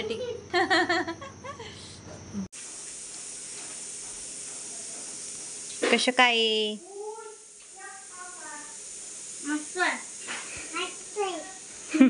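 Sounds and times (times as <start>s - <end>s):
background hiss: 0.0s - 12.0s
children's high-pitched voices: 6.8s - 8.8s, 10.7s - 11.6s.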